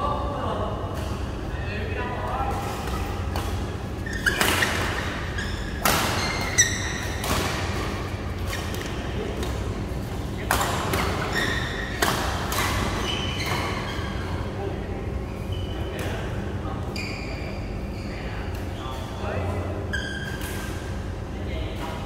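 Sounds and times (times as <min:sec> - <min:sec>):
low hum of hall: 0:00.0 - 0:22.0
court shoes squeaking: 0:02.2 - 0:21.1
racquets hitting shuttlecock: 0:02.6 - 0:09.7, 0:10.4 - 0:13.9.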